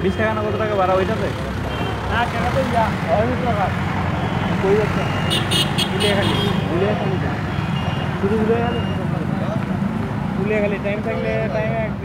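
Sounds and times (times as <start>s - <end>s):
traffic engine hum: 0.0s - 12.0s
people talking: 2.1s - 3.8s, 4.6s - 5.2s, 6.0s - 7.4s, 8.2s - 9.8s, 10.4s - 12.0s.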